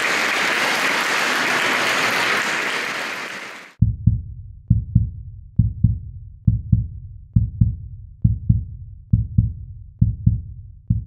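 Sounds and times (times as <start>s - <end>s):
heartbeat thumps: 3.8s - 11.0s.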